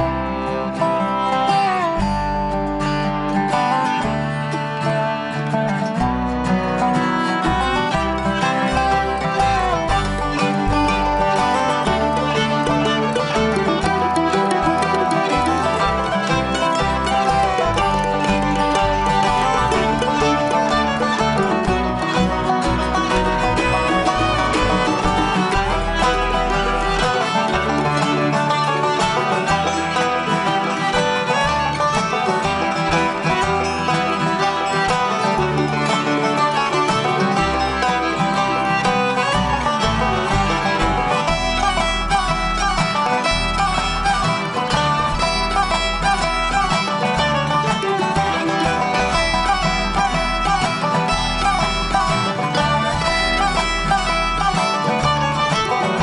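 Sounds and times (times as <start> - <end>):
banjo: 0.0 - 56.0
bluegrass band instrumental: 0.0 - 56.0
fiddle: 0.0 - 56.0.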